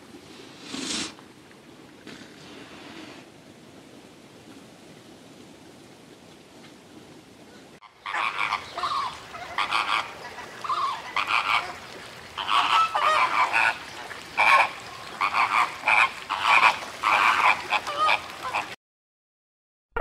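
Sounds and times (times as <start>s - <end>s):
flamingos honking: 7.6s - 18.8s.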